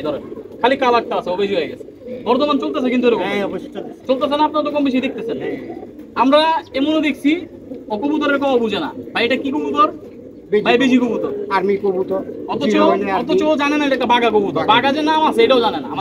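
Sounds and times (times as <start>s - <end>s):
men talking: 0.0s - 16.0s
pigeons cooing: 0.0s - 16.0s.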